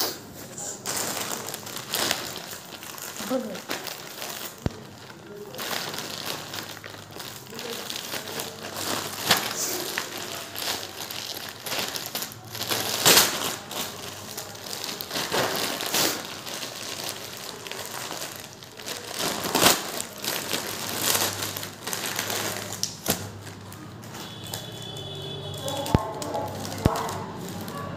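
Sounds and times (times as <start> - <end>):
plastic bag crinkling: 0.1 - 27.9.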